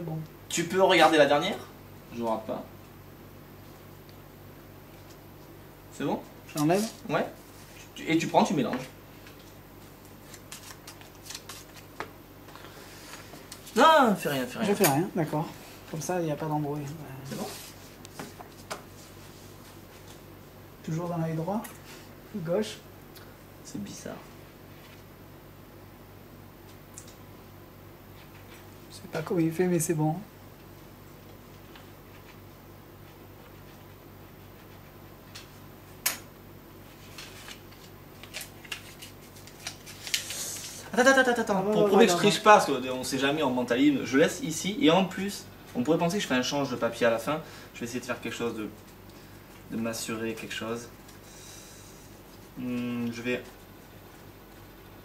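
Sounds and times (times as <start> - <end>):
paper rustling: 9.2 - 12.1, 36.9 - 40.9
playing cards shuffling: 10.1 - 12.1, 37.0 - 40.8.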